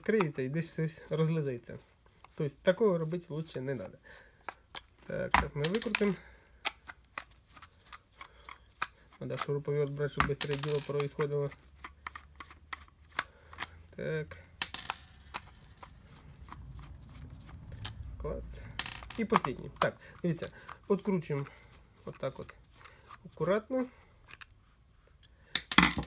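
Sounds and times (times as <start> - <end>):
metal parts clattering on table: 5.6 - 6.2, 10.2 - 11.2, 14.6 - 15.9, 18.6 - 19.8, 25.6 - 26.0.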